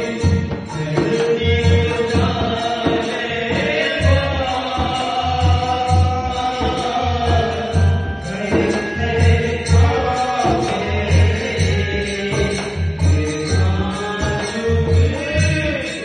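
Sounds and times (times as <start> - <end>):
men singing through microphones: 0.0 - 16.0.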